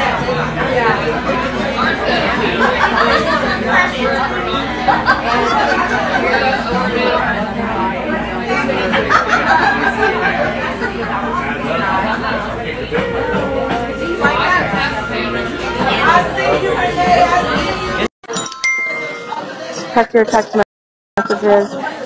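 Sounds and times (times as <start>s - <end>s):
overlapping indistinct chatter: 0.0s - 18.1s, 18.8s - 20.6s, 21.2s - 22.0s.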